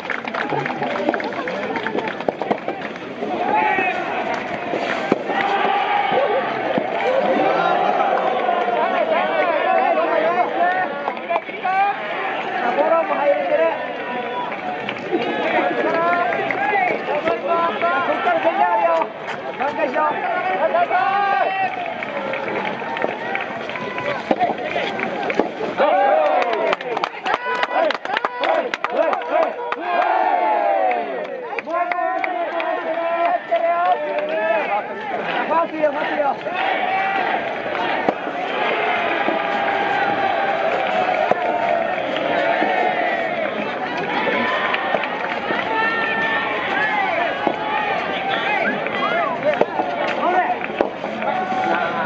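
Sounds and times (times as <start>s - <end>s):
crowd shouting and cheering: 0.0s - 52.0s.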